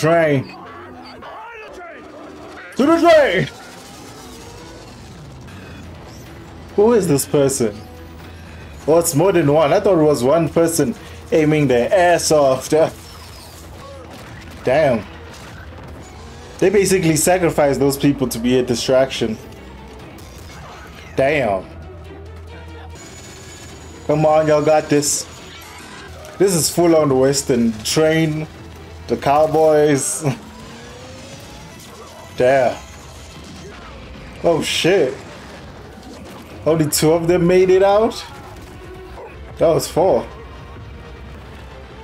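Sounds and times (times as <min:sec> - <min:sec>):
mechanical rumble: 0:01.7 - 0:09.5, 0:11.0 - 0:42.0
quiet background music: 0:04.7 - 0:42.0.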